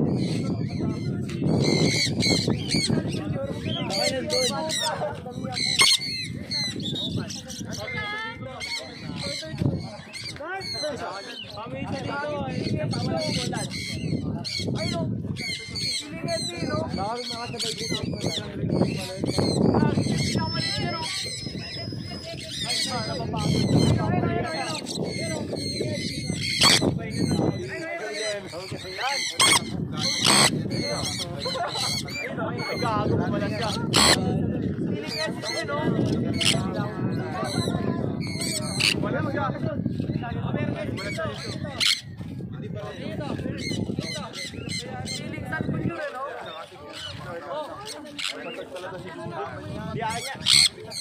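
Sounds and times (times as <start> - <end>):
parrots calling: 0.1 - 11.6, 12.5 - 34.4, 35.1 - 39.1, 41.0 - 42.2, 43.6 - 45.3, 46.6 - 48.8, 50.1 - 51.0.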